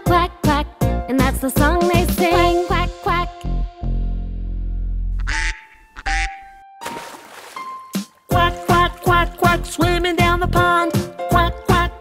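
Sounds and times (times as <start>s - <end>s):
children's song music: 0.0s - 4.6s, 7.6s - 12.0s
cartoon duck quacks: 5.2s - 6.5s.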